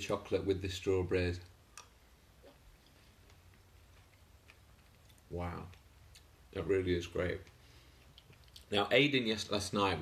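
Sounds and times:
faint chewing: 1.7 - 6.4, 7.3 - 8.8.

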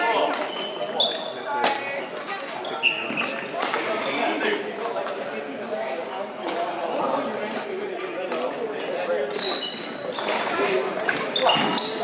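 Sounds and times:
shoe squeaks on floor: 0.5 - 1.5, 2.5 - 4.3, 9.3 - 10.4, 11.2 - 12.0.

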